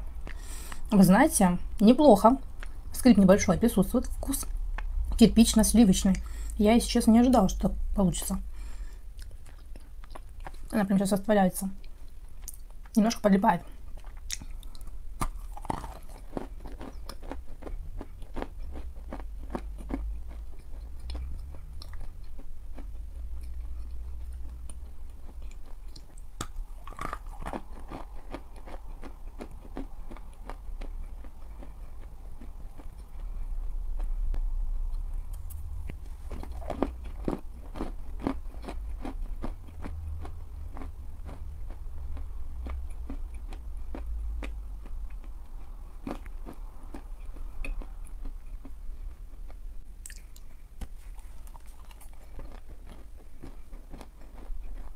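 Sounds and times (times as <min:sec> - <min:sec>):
crunching bites and chewing: 0:13.9 - 0:48.8, 0:49.4 - 0:54.9.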